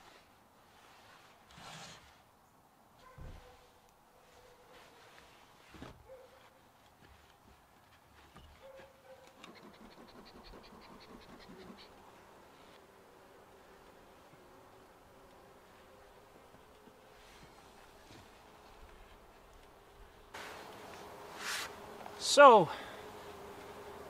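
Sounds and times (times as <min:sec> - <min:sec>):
honeybees humming: 0:09.4 - 0:24.0.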